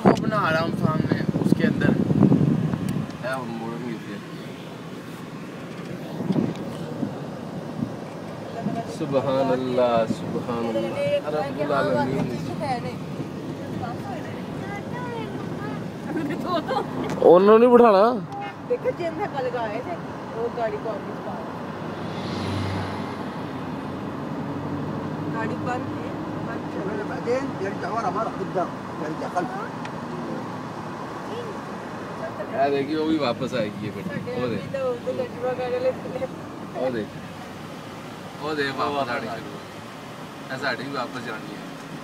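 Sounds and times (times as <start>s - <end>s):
road and wind noise in car: 0.0s - 42.0s.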